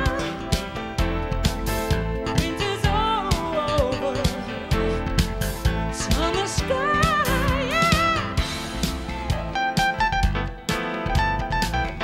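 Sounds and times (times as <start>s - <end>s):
drum-kit beat: 0.0s - 12.0s
jazz-fusion band playing: 0.0s - 12.0s.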